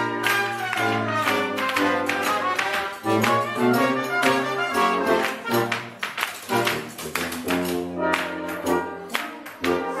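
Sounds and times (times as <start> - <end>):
wind quintet playing swing: 0.0 - 10.0.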